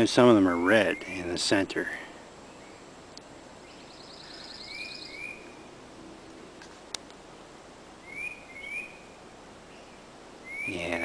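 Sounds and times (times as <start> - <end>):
birds singing: 0.0 - 6.4, 8.0 - 11.0
high bird trill: 0.4 - 1.6, 3.6 - 5.8, 8.0 - 11.0
whistled bird notes: 3.6 - 5.7, 8.0 - 11.0.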